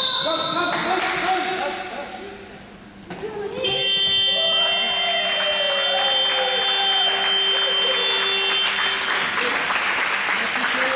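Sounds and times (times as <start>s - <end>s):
players shouting and cheering: 3.6s - 9.0s
scoreboard buzzer: 3.7s - 9.3s
applause: 4.5s - 10.9s.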